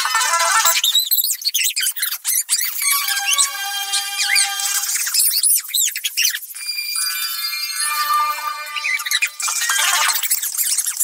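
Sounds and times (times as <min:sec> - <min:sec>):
sped-up high-pitched squeaky voices: 0:00.0 - 0:11.0
held high tone: 0:02.7 - 0:05.4, 0:06.6 - 0:10.3
sped-up cartoon music: 0:02.7 - 0:05.8, 0:06.6 - 0:10.6.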